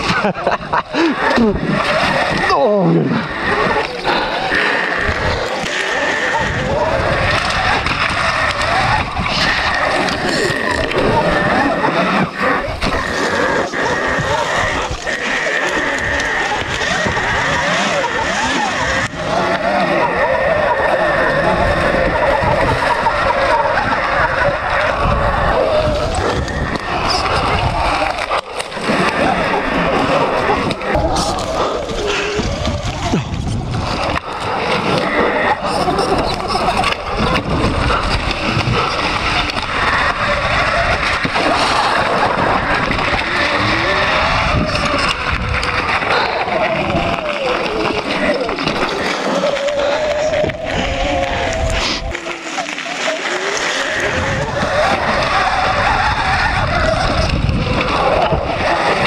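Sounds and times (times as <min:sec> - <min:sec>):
bike tyre and chassis rattle: 0:00.0 - 0:59.0
wind rushing over camera: 0:00.0 - 0:59.0.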